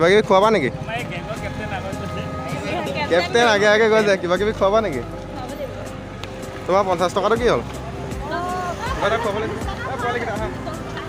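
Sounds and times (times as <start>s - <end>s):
vehicle engines running: 0.0s - 11.0s.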